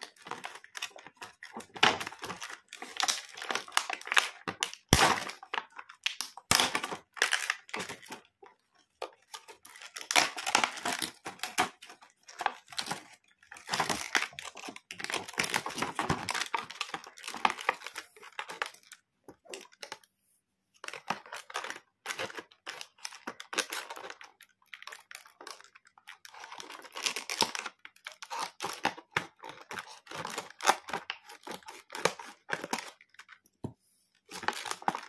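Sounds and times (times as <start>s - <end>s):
plastic packaging crinkling: 0.0s - 8.3s, 9.0s - 20.0s, 20.8s - 33.4s, 34.3s - 35.0s.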